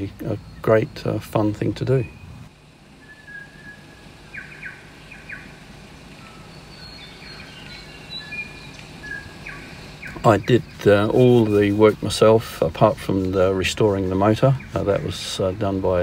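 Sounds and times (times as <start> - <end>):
birds chirping: 0.0 - 16.0
faint steady background noise: 0.0 - 16.0.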